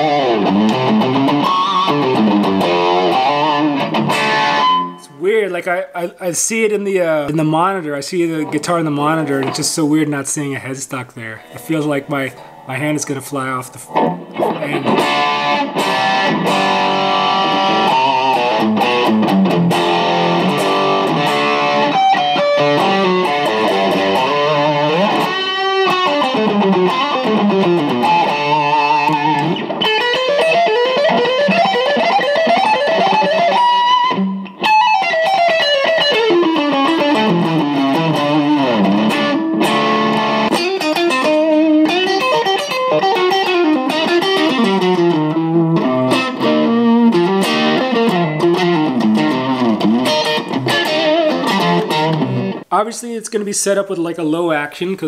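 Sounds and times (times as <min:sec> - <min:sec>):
electric guitar lead runs: 0:00.0 - 0:05.1, 0:13.9 - 0:52.6.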